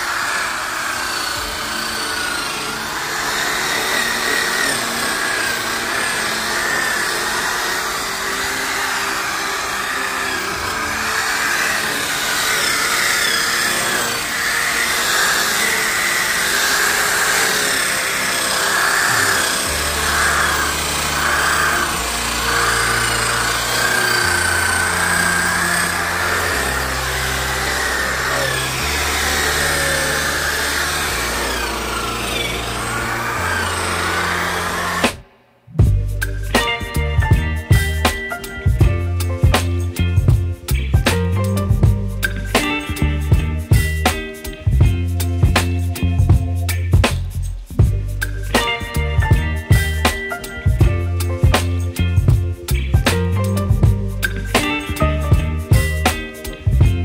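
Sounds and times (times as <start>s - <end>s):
electric polisher running: 0.0s - 35.4s, 48.2s - 52.4s, 53.0s - 56.8s
music: 0.0s - 57.0s
bass line: 19.0s - 57.0s.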